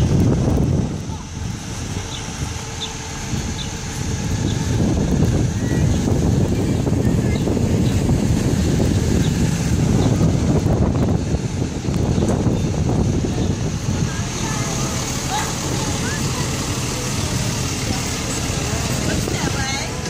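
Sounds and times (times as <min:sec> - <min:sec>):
school bus diesel engine passing: 0:00.0 - 0:20.0
wind buffeting microphone: 0:00.0 - 0:20.0.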